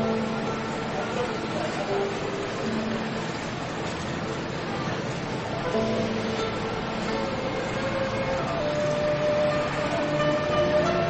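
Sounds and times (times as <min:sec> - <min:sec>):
faint background music: 0:00.0 - 0:11.0
steady hiss: 0:00.0 - 0:11.0.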